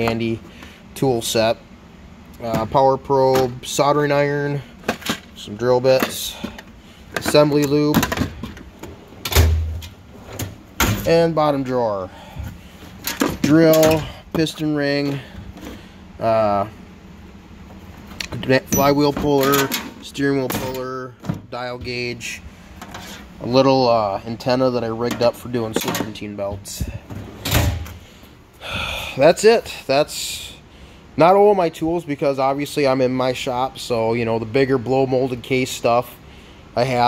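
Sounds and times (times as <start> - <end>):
steel drawer sliding shut: 27.1 - 28.0.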